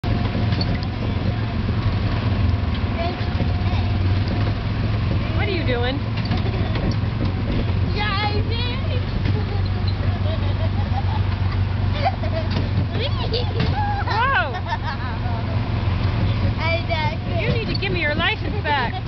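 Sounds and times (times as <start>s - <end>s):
small gasoline engine droning: 0.0s - 19.0s
young child's voice: 3.0s - 4.1s, 16.6s - 17.5s.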